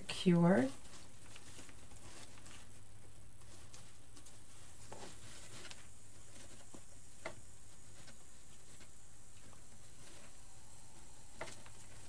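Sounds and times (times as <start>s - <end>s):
soft rustling: 0.0s - 12.0s
electrical buzz of glue pot: 4.8s - 12.0s.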